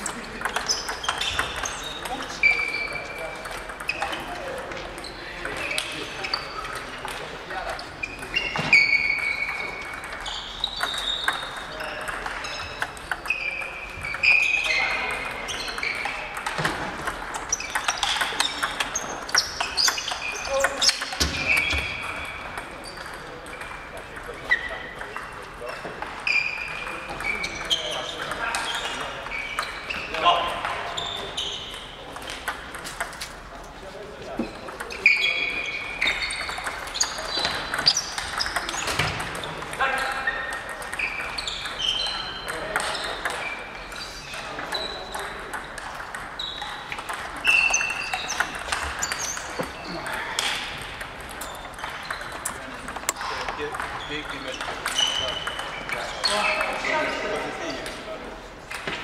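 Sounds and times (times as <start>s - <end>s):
table tennis balls clicking: 0.0s - 58.0s.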